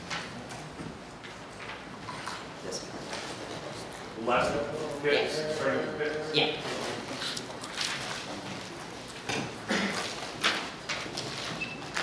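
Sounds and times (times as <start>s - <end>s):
papers being shuffled: 6.7s - 9.2s.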